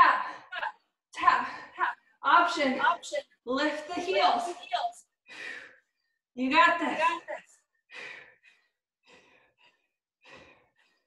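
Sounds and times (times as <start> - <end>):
woman breathing hard: 5.2 - 6.2, 7.8 - 11.0.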